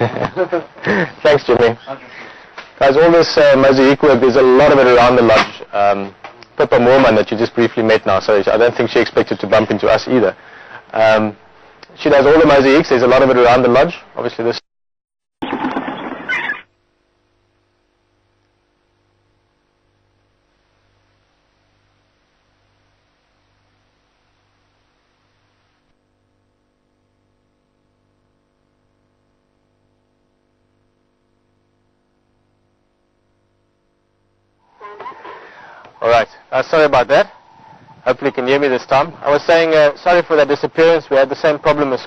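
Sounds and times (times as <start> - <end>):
background hiss: 0.0 - 14.6, 17.4 - 25.9, 34.6 - 42.0
faint steady hum: 0.0 - 14.6, 16.0 - 42.0
thin steady whine: 15.4 - 42.0.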